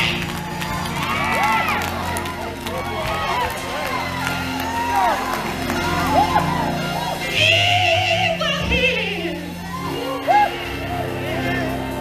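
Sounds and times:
congregation shouting and whooping: 0:00.0 - 0:08.4, 0:09.0 - 0:12.0
live gospel music: 0:00.0 - 0:12.0.

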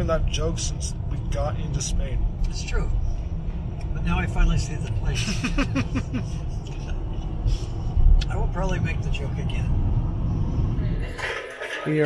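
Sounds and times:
road and engine rumble inside car: 0:00.0 - 0:12.0.

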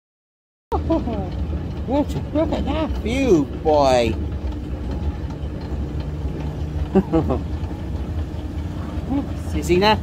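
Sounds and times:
building machinery hum: 0:00.7 - 0:10.0.

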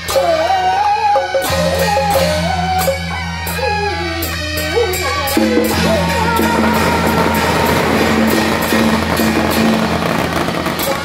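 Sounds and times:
high reed melody: 0:03.7 - 0:11.0
drum: 0:05.3 - 0:11.0.

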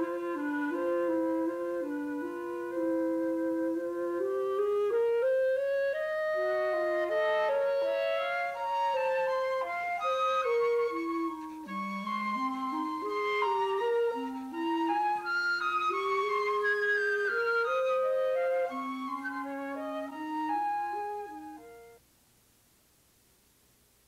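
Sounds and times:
clarinet playing: 0:00.0 - 0:22.0
flute melody: 0:00.0 - 0:22.0.

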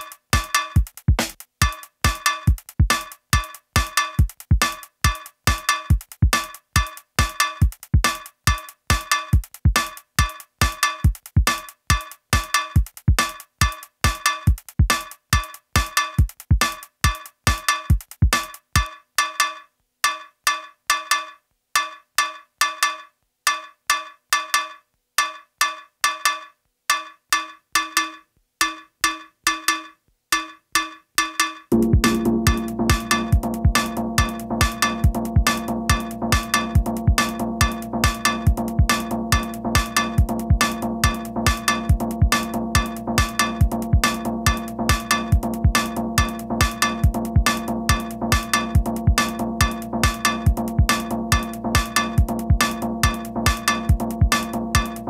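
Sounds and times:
kick drum: 0:00.8 - 0:01.4, 0:31.7 - 0:55.0
held low synth chord: 0:31.7 - 0:33.6
ringing percussion strikes: 0:31.7 - 0:35.7
cowbell-like synth hits: 0:31.7 - 0:55.0.

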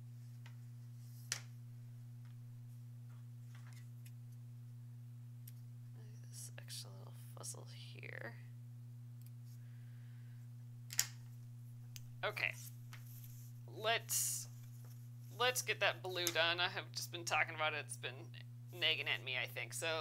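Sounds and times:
steady low hum: 0:00.0 - 0:20.0
soft rustles and taps: 0:12.5 - 0:13.6.

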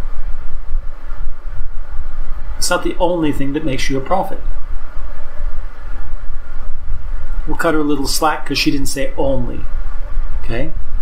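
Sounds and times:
loud low rumbling noise: 0:00.0 - 0:11.0.

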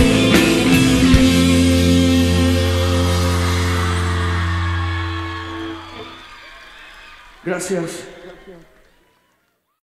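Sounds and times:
rock band chord on guitar and bass: 0:00.0 - 0:06.2
faint crowd noise: 0:03.0 - 0:09.8.

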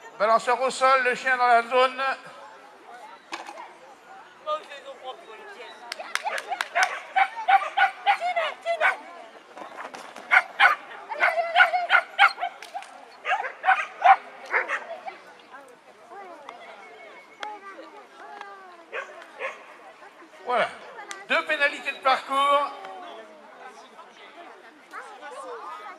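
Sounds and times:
dog barking: 0:06.3 - 0:09.0, 0:10.3 - 0:12.6, 0:13.2 - 0:14.9, 0:18.9 - 0:19.7.

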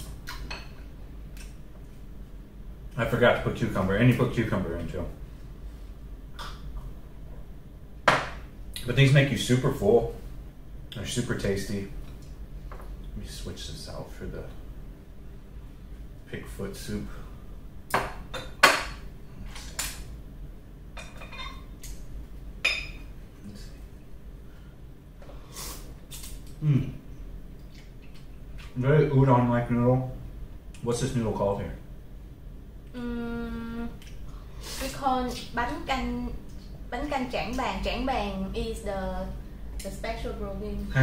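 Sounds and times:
ceramic dishes knocking on table: 0:08.1 - 0:08.4.

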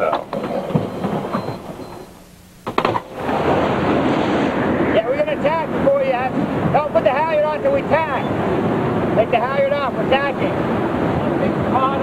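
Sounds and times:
wind and water rushing: 0:03.0 - 0:12.0.

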